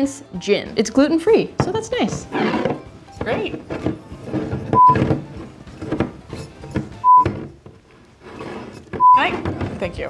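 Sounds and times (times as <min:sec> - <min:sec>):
censor bleeps: 0:04.8 - 0:05.0, 0:07.0 - 0:07.3, 0:09.0 - 0:09.2.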